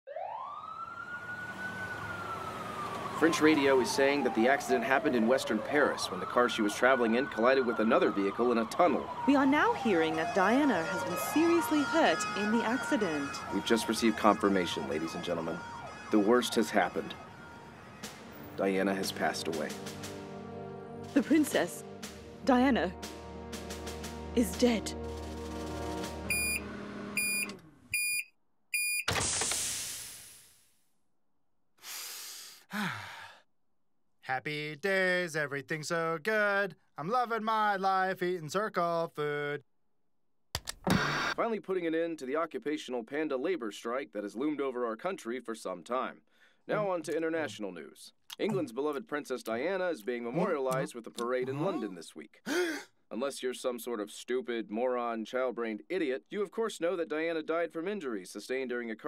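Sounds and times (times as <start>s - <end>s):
emergency vehicle siren wailing: 0.1s - 20.6s, 25.6s - 27.6s
microwave oven beeping: 26.3s - 29.2s.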